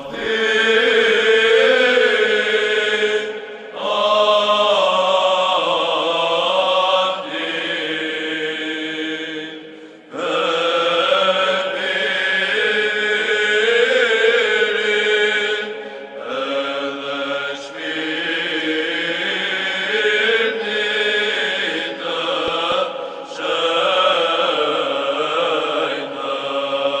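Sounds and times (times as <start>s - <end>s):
voices singing liturgical chant: 0.0s - 27.0s.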